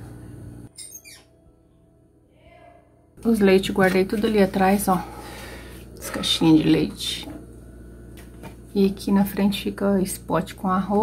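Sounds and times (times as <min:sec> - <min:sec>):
low steady hum: 0:00.0 - 0:00.7, 0:03.0 - 0:11.0.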